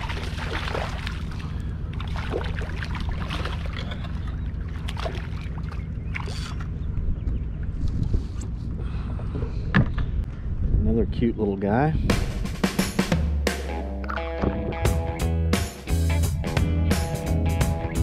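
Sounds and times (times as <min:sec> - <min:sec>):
fish splashing at water surface: 0:00.0 - 0:06.6
steady low hum: 0:00.0 - 0:12.6.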